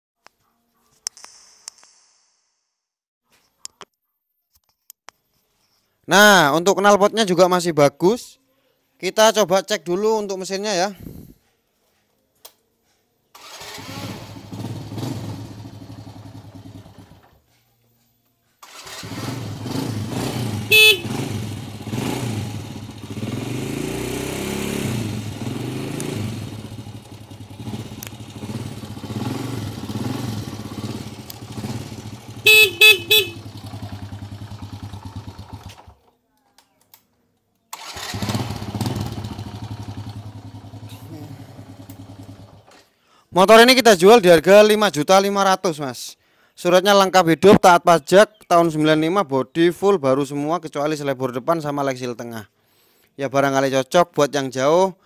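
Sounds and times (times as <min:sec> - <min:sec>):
motorcycle engine revving: 0:13.4 - 0:17.4, 0:18.6 - 0:36.0, 0:37.8 - 0:42.8
horn beeps: 0:20.6 - 0:21.3, 0:32.4 - 0:33.6.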